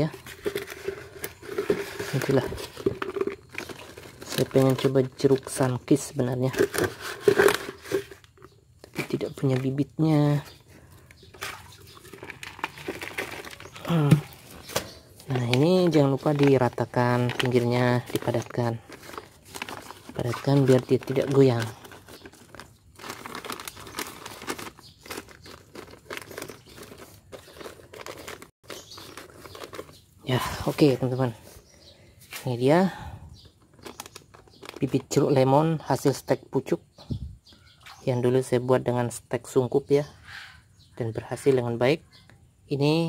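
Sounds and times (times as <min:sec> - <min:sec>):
soil crunching in plastic bag: 0:00.0 - 0:32.9, 0:33.6 - 0:35.5.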